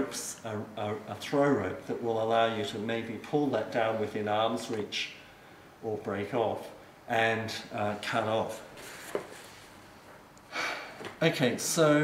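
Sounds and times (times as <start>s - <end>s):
man inhaling sharply: 10.5s - 11.1s.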